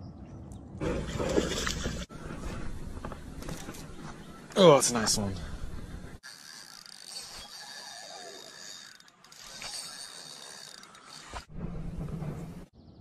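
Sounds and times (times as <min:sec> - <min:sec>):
fishing reel gears whirring: 0:06.2 - 0:11.5.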